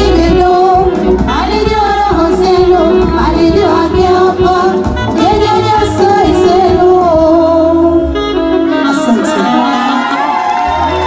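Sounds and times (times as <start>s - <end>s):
women singing: 0.0s - 8.2s
band playing live: 0.0s - 11.0s.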